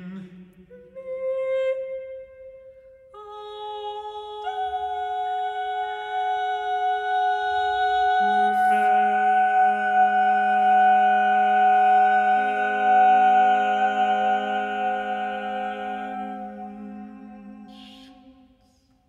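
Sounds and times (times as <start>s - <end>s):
vocal quartet singing held notes: 3.2s - 18.9s.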